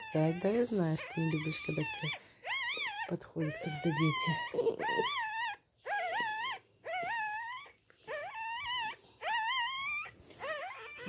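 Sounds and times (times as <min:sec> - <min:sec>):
dog whining: 0:00.0 - 0:11.0.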